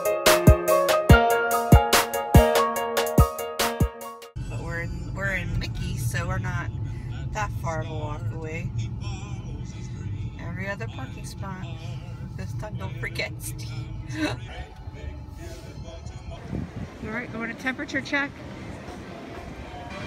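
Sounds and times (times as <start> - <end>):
car engine and tyres rumbling: 4.4 - 20.0
indistinct voices: 4.4 - 20.0.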